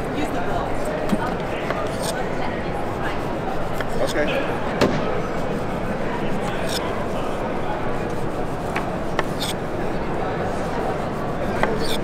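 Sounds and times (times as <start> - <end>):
crowd chatter: 0.0 - 12.0
knife cutting on wooden board: 1.1 - 2.4, 3.2 - 5.0, 5.6 - 9.8, 11.4 - 12.0.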